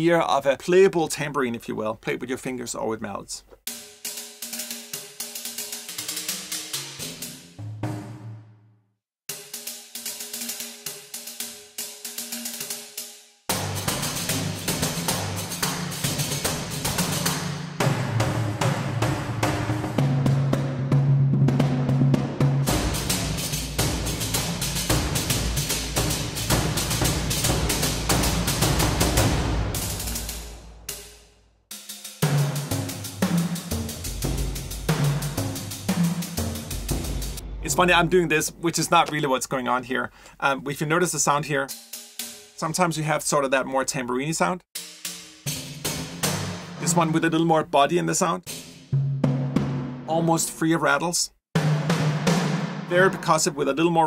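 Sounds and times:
deep drum strokes: 13.5s - 31.2s, 32.3s - 39.9s.

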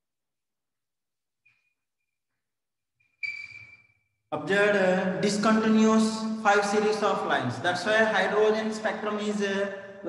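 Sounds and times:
chalk squeaking on a blackboard: 3.1s - 4.0s.

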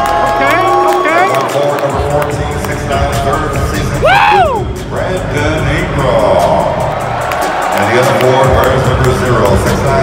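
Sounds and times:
crowd cheering: 0.0s - 2.9s, 6.4s - 10.0s
intro music: 0.0s - 10.0s
announcer calling over loudspeaker: 0.3s - 4.0s.

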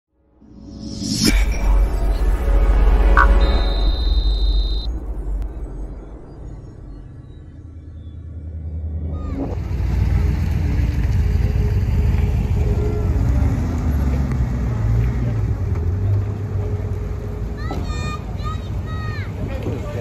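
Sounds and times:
vehicle engines rumbling past: 1.8s - 20.0s.

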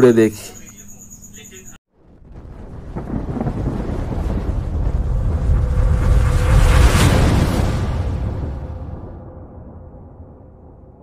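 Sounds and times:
deep rumbling whoosh: 2.0s - 11.0s.

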